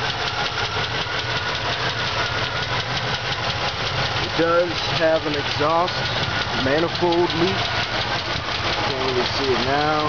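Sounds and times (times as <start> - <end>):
car engine idling with ticking: 0.0 - 10.0.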